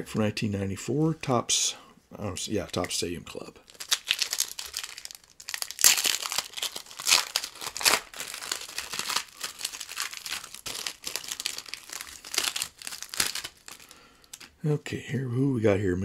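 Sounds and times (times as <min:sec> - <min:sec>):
plastic wrapper crinkling and tearing: 0:02.6 - 0:14.6.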